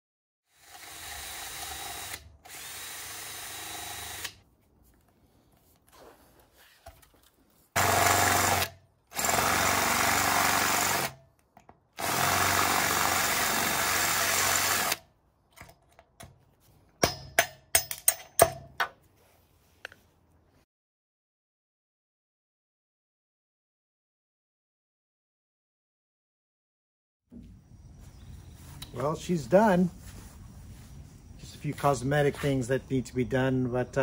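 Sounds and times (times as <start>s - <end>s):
cordless drill boring into metal: 0.5s - 4.4s, 7.8s - 11.2s, 12.0s - 15.0s.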